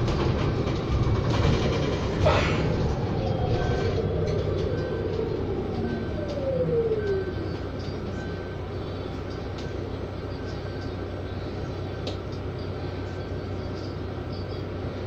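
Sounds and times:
electric bus drive whine: 0.0 - 15.0
low steady hum: 2.2 - 15.0.

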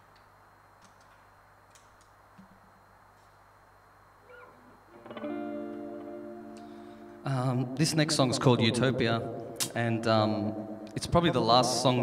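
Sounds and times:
faint hiss and hum: 0.0 - 12.0.

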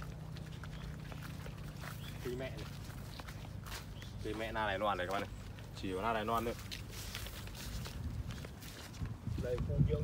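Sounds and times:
footsteps through seedlings: 0.0 - 10.0.

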